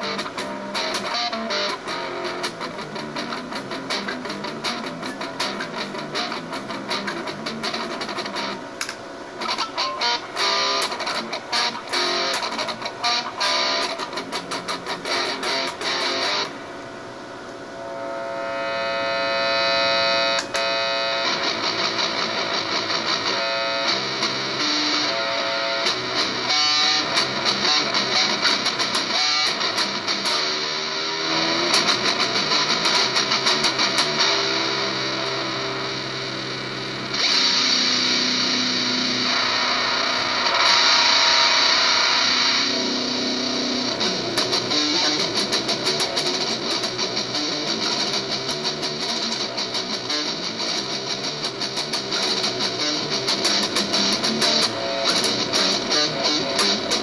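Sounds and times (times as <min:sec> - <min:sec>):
distorted electric guitar chords: 0:00.0 - 0:57.0.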